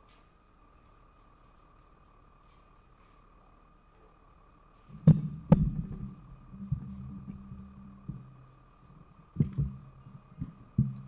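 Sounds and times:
microphone handling noise: 4.9s - 11.0s
sharp thumps: 4.9s - 11.0s.

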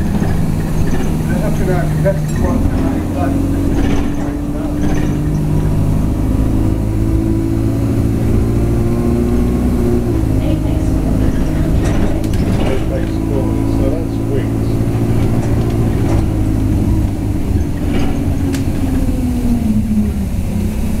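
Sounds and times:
bus engine running: 0.0s - 21.0s.

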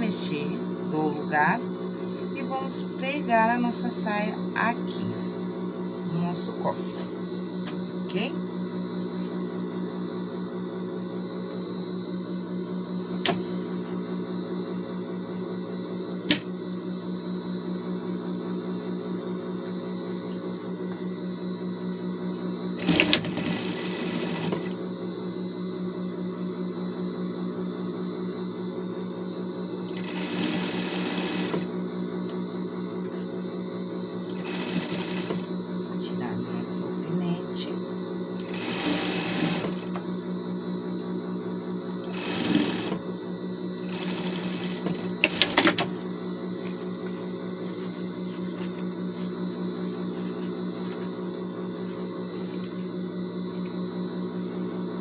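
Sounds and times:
sewing machine motor humming: 22.8s - 24.8s, 29.9s - 31.7s, 34.3s - 35.5s, 38.3s - 40.0s, 42.0s - 43.1s, 43.8s - 46.0s
sewing needle running: 22.8s - 24.8s, 29.9s - 31.7s, 34.3s - 35.5s, 38.4s - 40.0s, 42.0s - 43.0s, 43.8s - 45.9s.

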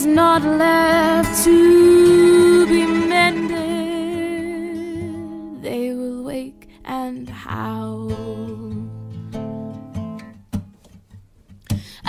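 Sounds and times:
plucked strings: 0.0s - 6.8s
held low notes: 0.7s - 4.8s.

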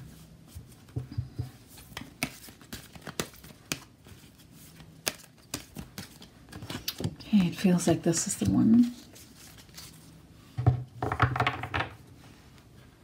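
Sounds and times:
cards being shuffled by hand: 0.5s - 7.6s, 8.3s - 10.2s.

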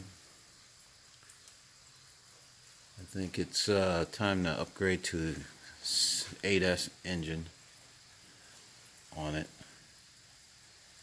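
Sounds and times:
low hiss: 0.0s - 11.0s
tiny ticks: 1.0s - 1.6s.

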